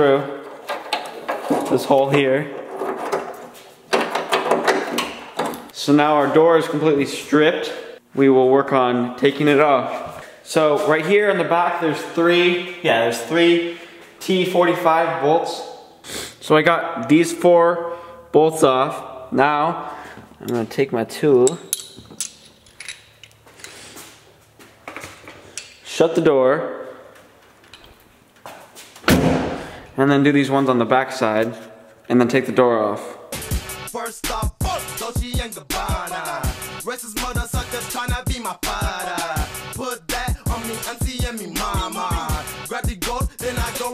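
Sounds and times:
wiring harness clicking and rustling: 0:00.4 - 0:05.8, 0:21.5 - 0:23.8
socket wrench clinking: 0:21.4 - 0:23.4.

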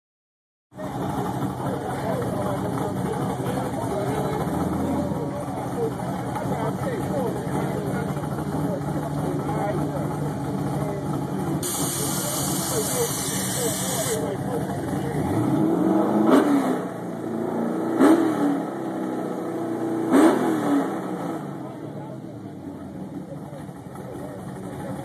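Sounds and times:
car engine idling: 0:00.8 - 0:15.5, 0:21.0 - 0:25.0
people talking: 0:00.8 - 0:17.2, 0:21.2 - 0:25.0.

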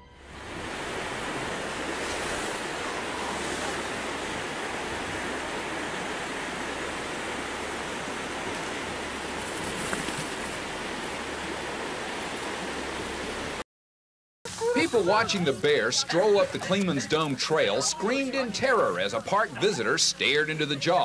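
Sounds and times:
river water rushing: 0:00.0 - 0:13.6, 0:14.5 - 0:21.0.

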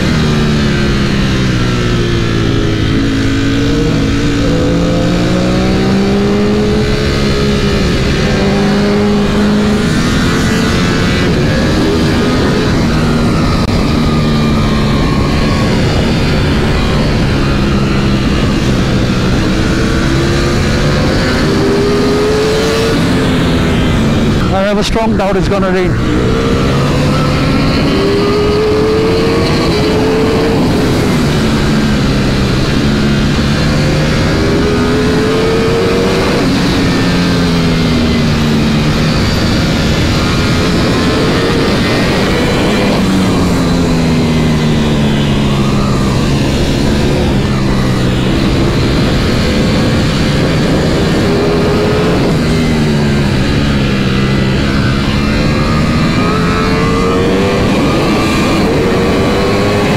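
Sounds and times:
motorcycle engine revving: 0:00.0 - 0:59.9
wind rush: 0:00.0 - 0:59.9.

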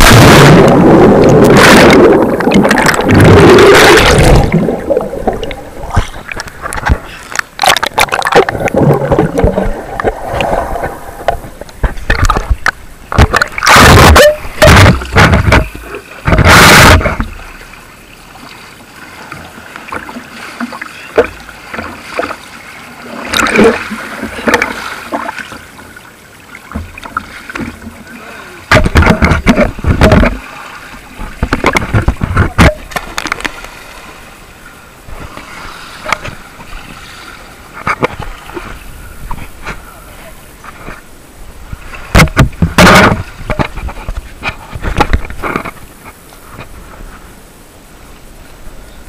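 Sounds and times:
person jumping into water splash: 0:00.0 - 0:10.9, 0:13.2 - 0:17.4
muffled water lapping and gurgling: 0:00.0 - 0:49.0.

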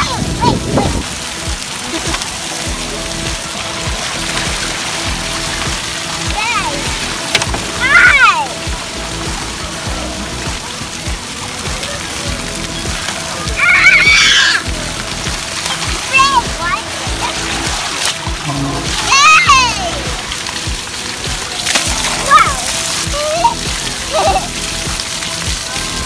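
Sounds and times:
music playing: 0:00.0 - 0:26.0
water pouring and splashing: 0:00.0 - 0:26.0
children shouting: 0:07.8 - 0:08.6, 0:13.3 - 0:14.7, 0:18.9 - 0:20.1, 0:22.0 - 0:24.6.

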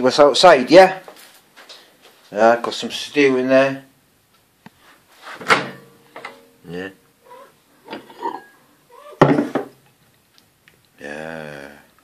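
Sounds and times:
man muttering: 0:06.6 - 0:07.0.

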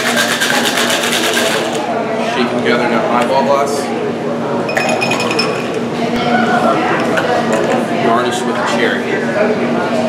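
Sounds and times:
shaker tin clinking against glass: 0:04.7 - 0:05.9
drink being poured: 0:04.7 - 0:06.0
metallic ringing: 0:04.7 - 0:06.0.

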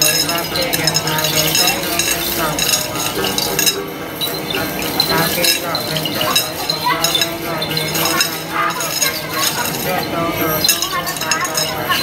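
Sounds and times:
jingle bells clinking: 0:00.0 - 0:12.0
person chanting: 0:04.5 - 0:12.0.

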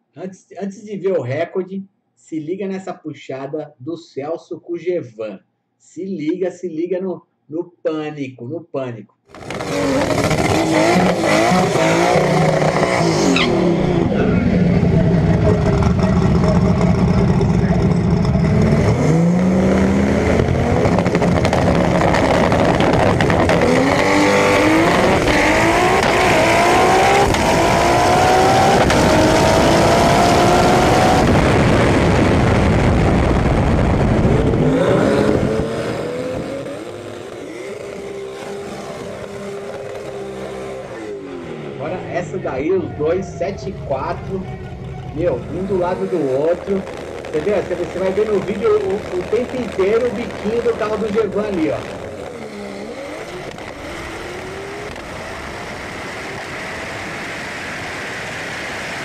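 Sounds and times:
racing car engine at full throttle: 0:09.3 - 0:59.0.

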